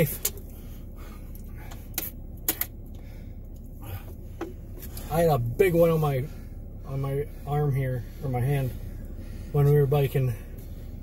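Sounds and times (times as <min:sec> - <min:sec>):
low vehicle rumble: 0:00.0 - 0:11.0.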